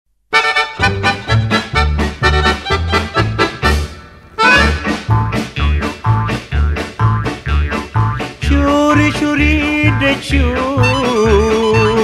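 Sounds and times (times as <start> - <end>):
lively folk instrumental: 0.3 - 12.0.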